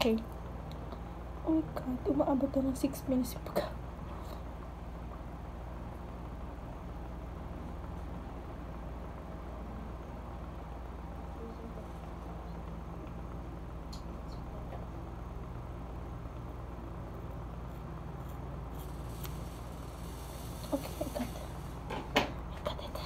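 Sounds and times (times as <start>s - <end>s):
scissors snipping hair: 17.7s - 19.6s.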